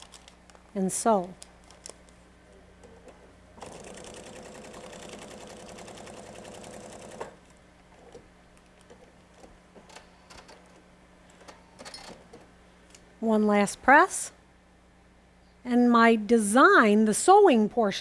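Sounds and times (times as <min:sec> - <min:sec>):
sewing machine stitching: 0:03.6 - 0:07.4.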